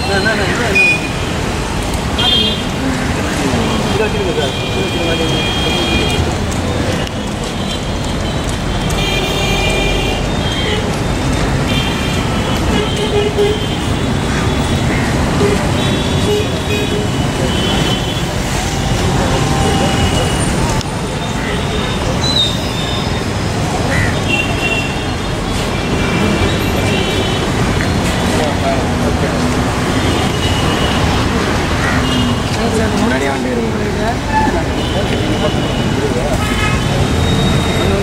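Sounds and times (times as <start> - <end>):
people talking: 0.0 - 1.2, 2.0 - 7.6, 15.3 - 38.0
road traffic noise: 0.0 - 38.0.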